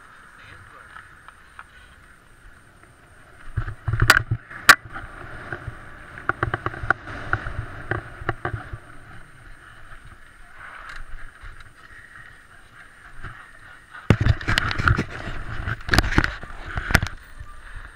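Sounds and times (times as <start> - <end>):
bike clicking and rattling: 0.0 - 17.9
bike tyres rolling over gravel: 0.0 - 17.9
knocks and rumbling on microphone: 3.5 - 10.2, 14.0 - 17.2.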